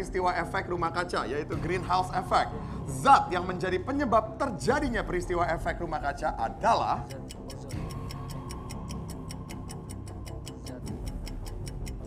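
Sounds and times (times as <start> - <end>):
background music with held tone: 0.0 - 12.0
fast clock-like ticking: 0.0 - 12.0.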